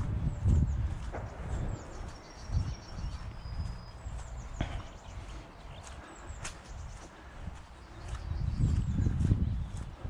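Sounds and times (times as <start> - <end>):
bird chirps: 0.0 - 10.0
footsteps on dirt track: 0.0 - 10.0.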